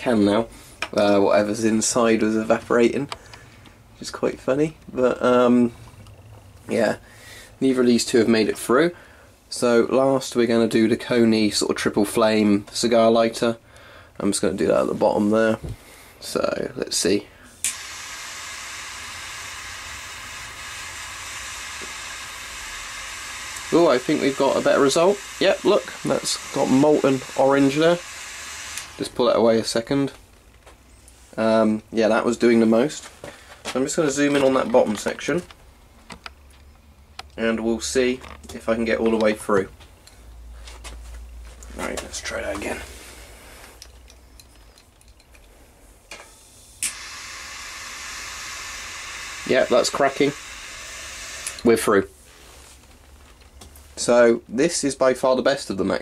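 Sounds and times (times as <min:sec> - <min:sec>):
lighter jet flame hissing: 0:17.5 - 0:29.0, 0:46.2 - 0:49.5, 0:50.2 - 0:51.7.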